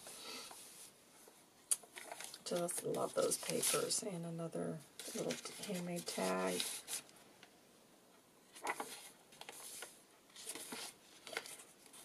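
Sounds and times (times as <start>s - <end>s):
paper page rustling: 1.8s - 4.0s, 5.0s - 7.1s, 8.5s - 12.0s.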